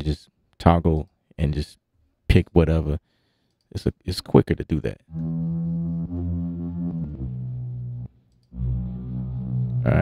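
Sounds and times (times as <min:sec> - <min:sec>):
synth bass note: 0:05.1 - 0:10.0.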